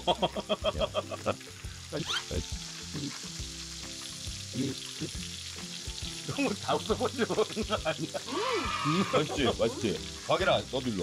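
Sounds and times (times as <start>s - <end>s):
burst of laughter: 0.0s - 1.4s
meat sizzling on a griddle: 0.0s - 11.0s.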